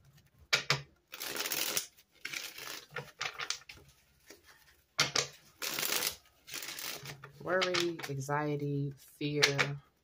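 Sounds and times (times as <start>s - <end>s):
cards being shuffled: 1.1s - 8.2s.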